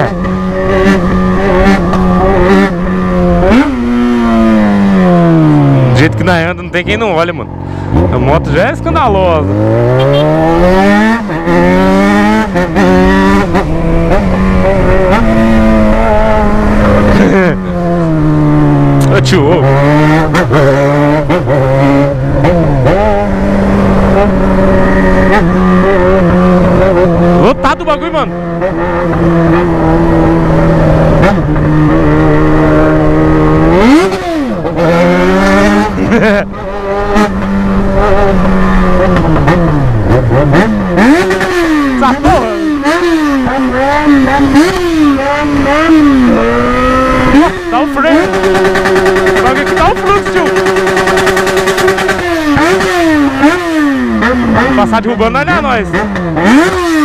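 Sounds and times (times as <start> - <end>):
motorcycle engine running: 0.0 - 57.0
engine rev blip: 9.5 - 15.6
laughter: 36.0 - 36.5.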